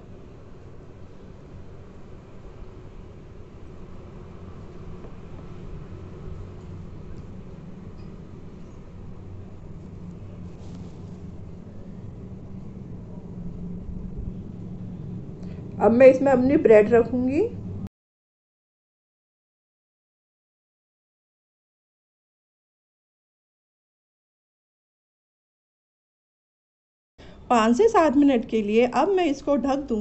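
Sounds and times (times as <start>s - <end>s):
low rumble with faint hum: 0.0s - 17.9s.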